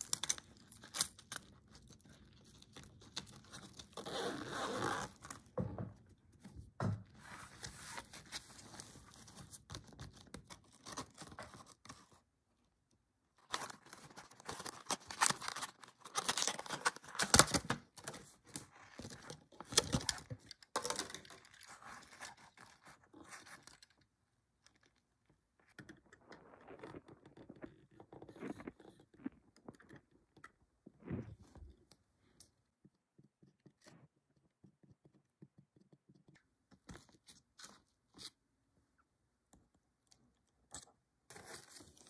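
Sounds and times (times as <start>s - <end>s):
zipper being pulled: 3.9s - 5.4s
plastic packaging crinkling: 13.5s - 23.6s.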